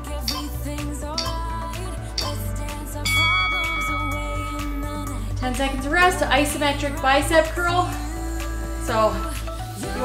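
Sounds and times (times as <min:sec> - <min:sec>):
background music: 0:00.0 - 0:10.0
timer app bell chime: 0:01.2 - 0:01.4, 0:03.0 - 0:05.2.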